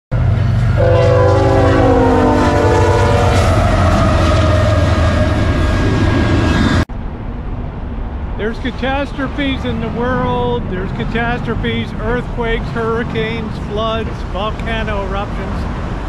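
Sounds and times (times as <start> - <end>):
diesel locomotives rumbling past: 0.1 - 16.0
locomotive air horn chord: 0.6 - 5.8.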